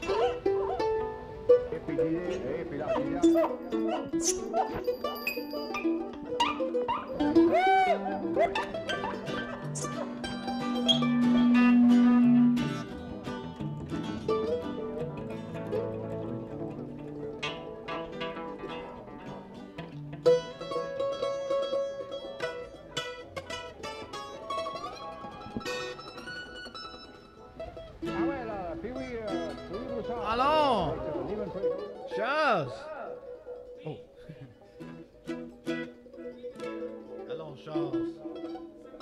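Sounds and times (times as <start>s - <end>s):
plucked string instruments: 0.0s - 39.0s
wavering sliding tones: 3.2s - 13.1s.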